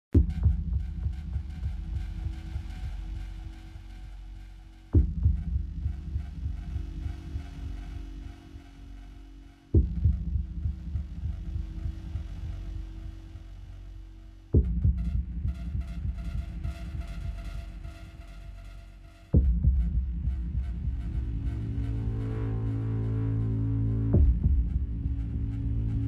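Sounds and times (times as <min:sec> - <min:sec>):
throbbing low rumble: 0:00.2 - 0:26.0
faint steady hum: 0:00.8 - 0:26.0.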